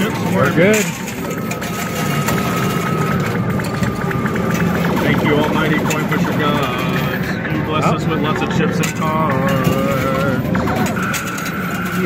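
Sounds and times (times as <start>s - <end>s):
arcade din: 0.0s - 12.0s
held electronic tone: 0.0s - 12.0s
steady machine hum: 0.0s - 12.0s.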